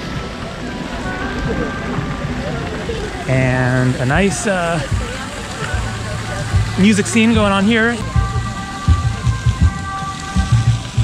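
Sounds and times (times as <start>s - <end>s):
distant live rock band: 0.0s - 11.0s
steady hiss: 0.0s - 11.0s
low drum and bass thumps: 3.3s - 11.0s.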